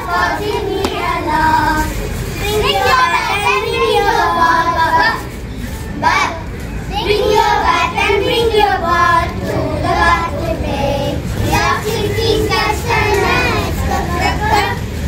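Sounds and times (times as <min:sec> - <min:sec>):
young children singing: 0:00.0 - 0:15.0.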